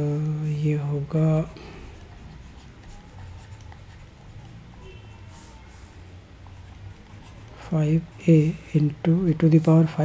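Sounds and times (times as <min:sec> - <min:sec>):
low background hum: 0:00.0 - 0:10.0
stylus scratching and tapping: 0:01.4 - 0:10.0.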